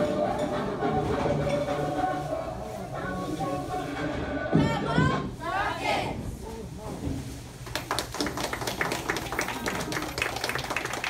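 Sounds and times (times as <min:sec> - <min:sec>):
audience applauding: 0:07.7 - 0:11.0.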